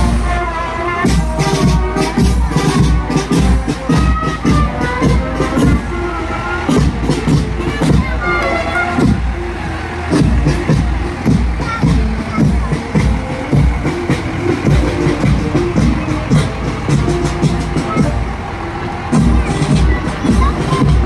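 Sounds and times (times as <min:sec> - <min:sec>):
drums keeping steady beat: 0:00.0 - 0:21.0
marching band playing: 0:00.0 - 0:21.0.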